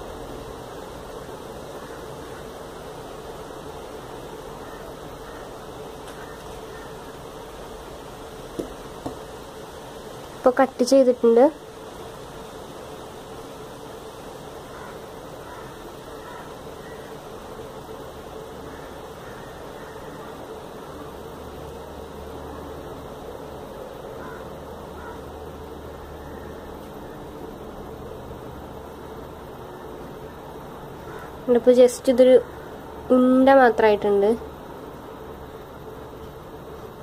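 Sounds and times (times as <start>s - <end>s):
room noise hum and hiss: 0.0s - 37.0s.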